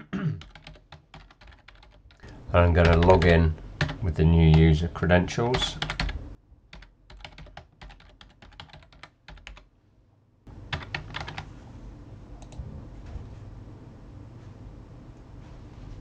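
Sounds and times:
steady low hum: 0.0s - 16.0s
computer keyboard keystrokes: 0.4s - 2.2s, 2.8s - 4.0s, 5.8s - 6.2s, 6.8s - 9.6s, 10.7s - 11.5s.

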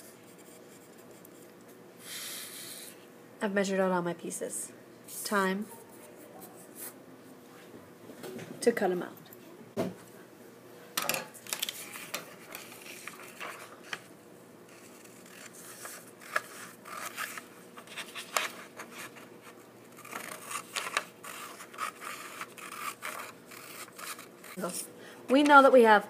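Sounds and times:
paper rustling and crackling: 11.4s - 14.1s
scissors cutting paper: 14.7s - 24.7s.

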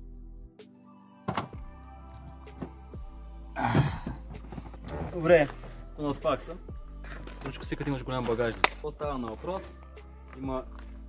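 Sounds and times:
background music: 0.0s - 11.0s
thumps and knocks in car cargo area: 1.3s - 1.7s, 3.6s - 5.3s.

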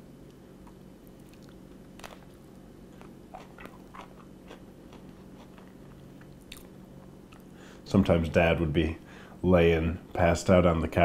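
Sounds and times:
faint low hum: 0.0s - 11.0s
man chewing food: 0.3s - 7.6s
mouth clicks and crunches: 0.6s - 7.5s.

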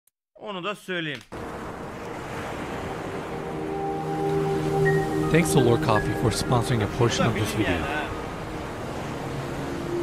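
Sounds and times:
surf: 1.3s - 10.0s
whooshing wind: 1.4s - 10.0s
soft piano music: 3.4s - 10.0s.

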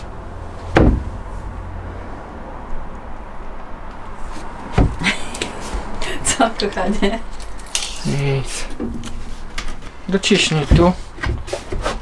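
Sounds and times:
dull wooden knocks: 0.7s - 1.2s, 4.7s - 5.0s.

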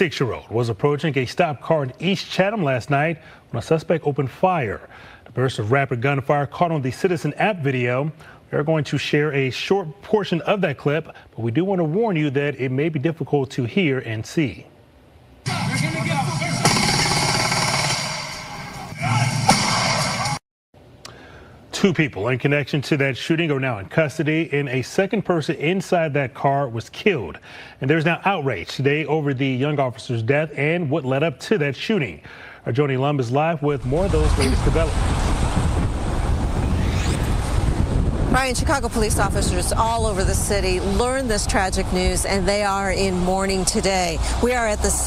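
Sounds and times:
rapid gunfire: 16.5s - 18.4s
wind rumble on microphone: 33.8s - 43.1s
street traffic: 41.2s - 45.0s.

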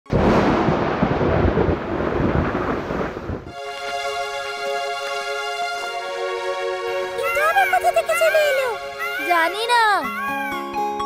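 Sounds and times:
rumbling thunder: 0.1s - 3.6s
rain: 0.1s - 7.2s
music with held tones: 3.5s - 11.0s.

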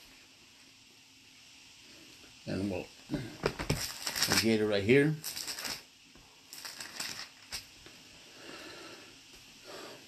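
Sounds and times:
thin pages rustling and flipping: 3.6s - 4.6s, 5.2s - 5.9s, 6.6s - 7.6s.

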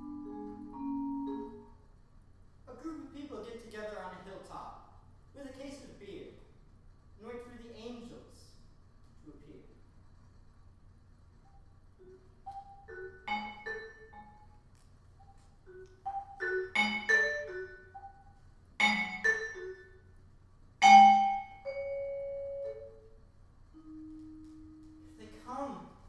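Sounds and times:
vibraphone played with mallets: 0.0s - 1.6s, 12.4s - 14.5s, 15.7s - 19.9s, 20.8s - 23.0s.

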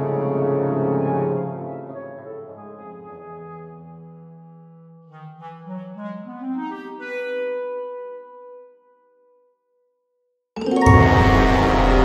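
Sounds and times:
low brass chord: 10.6s - 12.0s.

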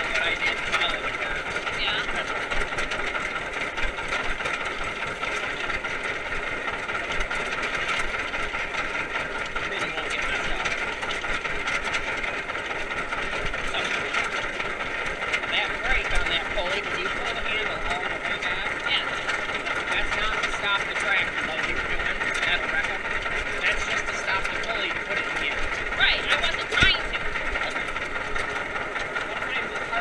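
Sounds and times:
tractor engine running: 0.0s - 30.0s.

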